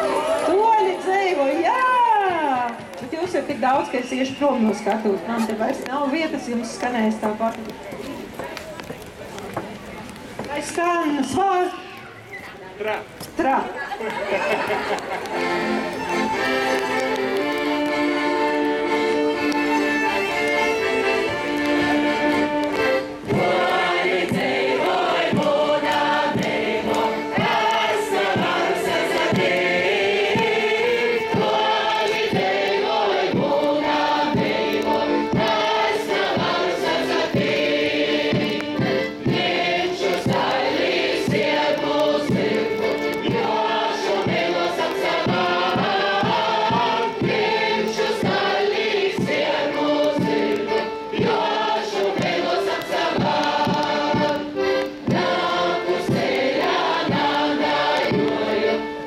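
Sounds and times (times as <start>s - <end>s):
crowd singing a folk song: 0.0s - 2.0s, 13.8s - 59.0s
instrumental accompaniment: 14.2s - 59.0s.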